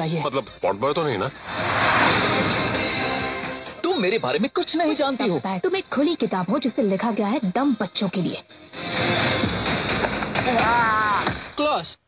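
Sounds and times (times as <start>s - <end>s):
music: 0.4s - 11.9s.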